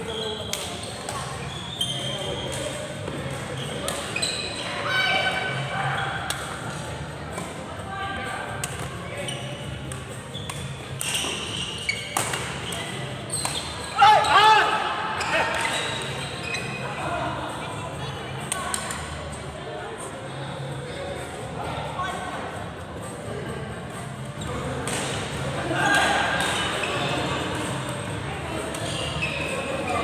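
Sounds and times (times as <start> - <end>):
sneaker squeaks on court floor: 0.0 - 4.9, 9.0 - 14.5, 15.1 - 16.9, 26.0 - 30.0
background chatter: 0.0 - 30.0
racket hitting shuttlecock: 9.8 - 13.7, 24.8 - 25.3, 26.0 - 26.7.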